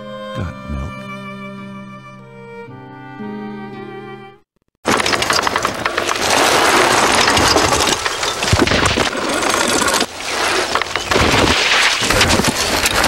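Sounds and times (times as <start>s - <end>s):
string music: 0.0s - 4.5s
bike tyres skidding on gravel: 4.9s - 13.0s.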